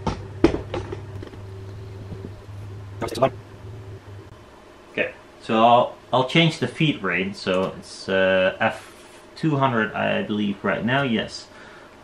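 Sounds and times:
stepper motor low hum: 0.8 - 4.4.

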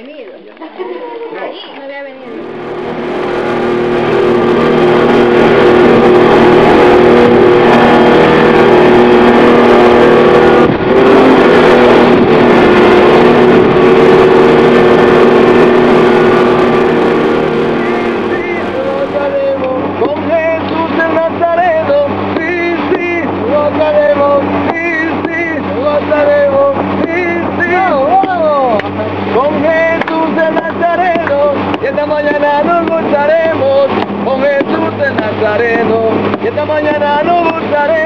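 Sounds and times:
outboard motor running: 0.0 - 38.0
wind and water rushing: 2.3 - 38.0.

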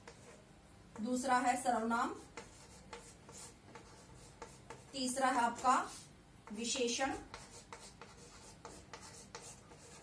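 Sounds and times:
chalk scratching on chalkboard: 0.0 - 0.4, 1.8 - 10.0
chalk tapping on board: 0.0 - 1.1, 2.2 - 10.0.

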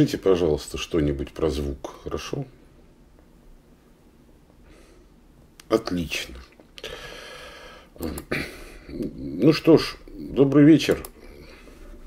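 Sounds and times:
man breathing into microphone: 6.8 - 8.0.

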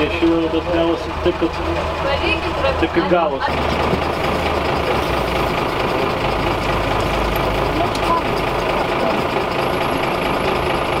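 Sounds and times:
street noise: 0.0 - 11.0
truck diesel engine idling: 0.0 - 11.0.

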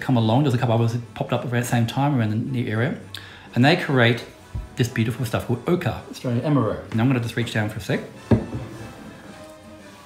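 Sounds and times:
faint background music: 0.0 - 10.0
bottles knocking on trolley: 8.3 - 8.8.

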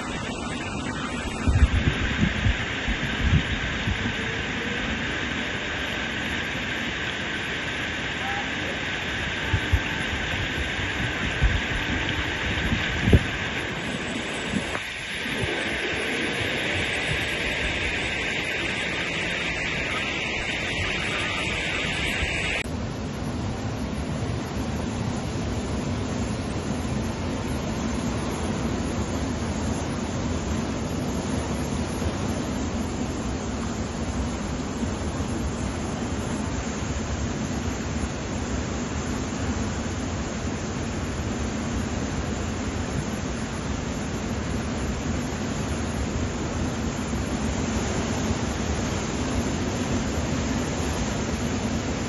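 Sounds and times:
floodwater rushing: 0.0 - 22.6
wind on microphone: 0.0 - 22.7.

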